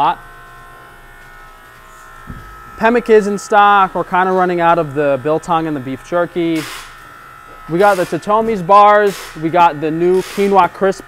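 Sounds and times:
high whining tones: 0.0s - 9.9s
electrical hum: 0.0s - 11.0s
person speaking: 2.3s - 6.7s, 7.7s - 11.0s.

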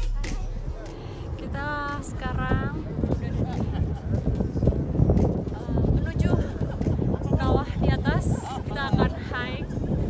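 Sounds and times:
background music: 0.0s - 10.0s
crowd of walkers outdoors: 0.0s - 10.0s
woman's voice: 1.3s - 3.4s, 5.8s - 9.7s.

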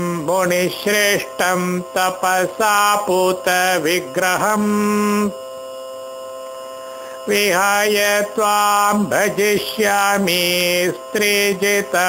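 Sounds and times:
person chanting one note: 0.0s - 5.4s, 6.4s - 12.0s
steady hum of fixed tones: 0.0s - 12.0s.

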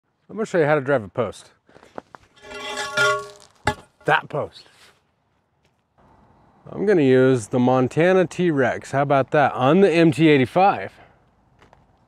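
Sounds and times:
metal post scraping: 2.0s - 4.5s
metal pipe ringing: 2.4s - 4.2s
sharp metallic clank: 2.4s - 4.3s.

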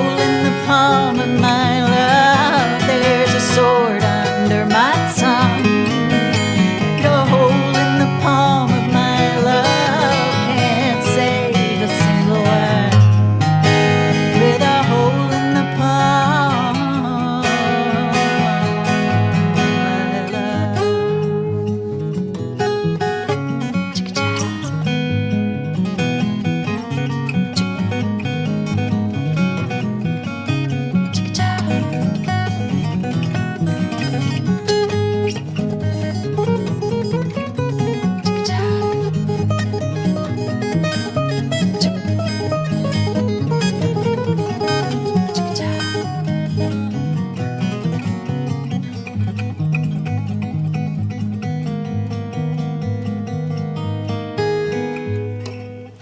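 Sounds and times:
two acoustic guitars playing: 0.0s - 56.0s.

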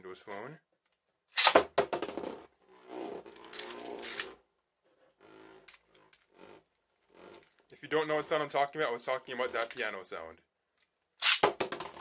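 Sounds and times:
spinning top whirring: 1.4s - 10.0s.

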